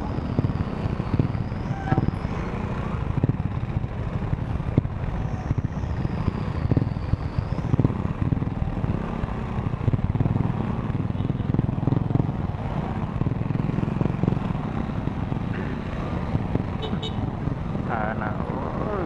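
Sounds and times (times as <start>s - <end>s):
motorcycle engines running low speed: 0.0s - 19.0s.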